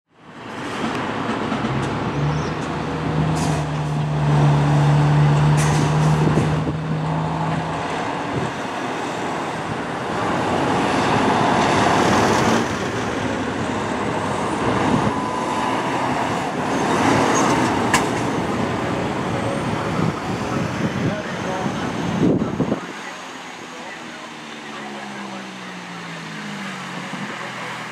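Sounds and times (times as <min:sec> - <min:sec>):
road traffic passing: 0:00.1 - 0:27.9
truck engine: 0:00.2 - 0:27.9.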